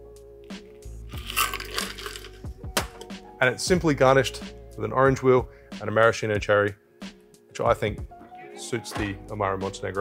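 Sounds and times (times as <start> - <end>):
ice rattling in metal tin: 1.2 - 2.4
liquid pouring over ice: 1.2 - 2.4.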